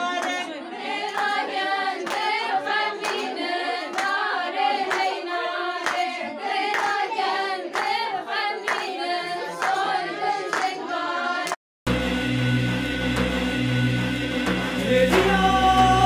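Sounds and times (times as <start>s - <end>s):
women singing together: 0.3s - 11.6s, 14.8s - 16.0s
hand claps: 1.1s - 1.4s, 2.0s - 2.4s, 3.0s - 4.3s, 4.9s - 5.2s, 5.8s - 6.1s, 6.7s - 7.0s, 7.7s - 8.0s, 8.6s - 9.0s, 9.6s - 9.9s, 10.5s - 10.8s.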